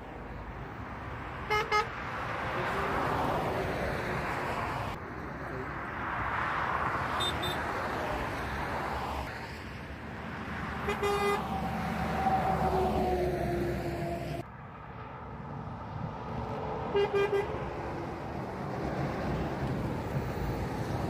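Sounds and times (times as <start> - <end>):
motorway traffic rushing past: 0.0 - 21.0
lorry horn toots: 1.5 - 1.9, 10.8 - 11.5.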